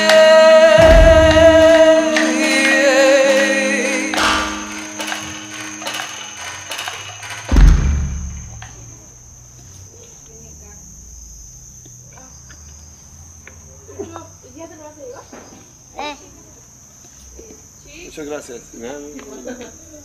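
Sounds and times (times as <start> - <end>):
music: 0.0 - 8.2
insects chirring: 0.0 - 20.0
deep low boom: 0.8 - 1.8.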